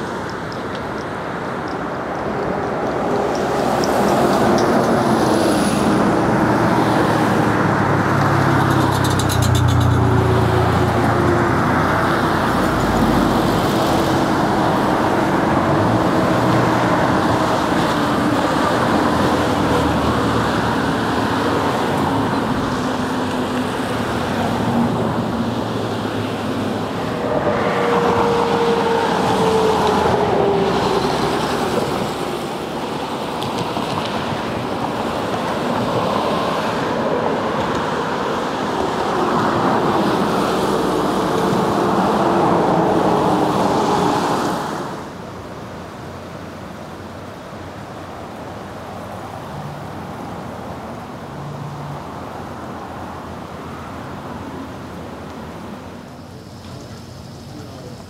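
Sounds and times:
road traffic passing: 0.0 - 58.0.

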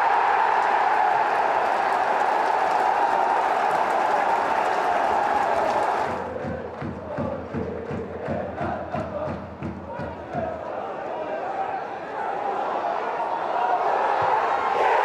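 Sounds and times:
crowd clapping: 0.0 - 10.8
crowd chanting: 0.0 - 15.0
crowd roaring and cheering: 0.0 - 15.0.

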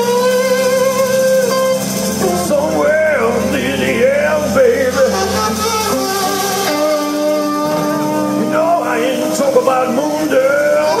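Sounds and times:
band bass and guitar: 0.0 - 11.0
held instrumental note: 0.0 - 11.0.

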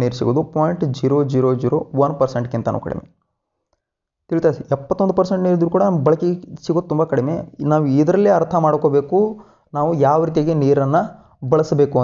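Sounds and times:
man lecturing: 0.0 - 3.1, 4.3 - 12.0.

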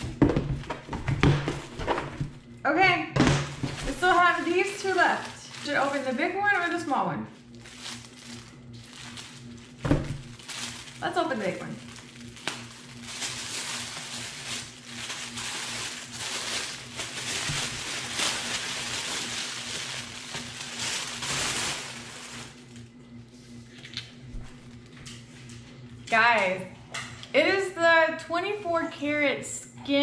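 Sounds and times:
bubble wrap crackling: 3.5 - 22.9
tissue paper crinkling: 3.6 - 6.8, 7.4 - 22.8.

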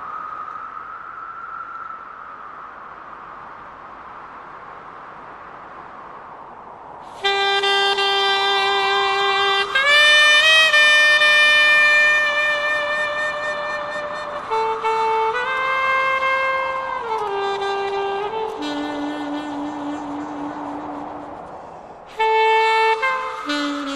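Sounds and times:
wind instrument slow melody: 7.2 - 23.9.

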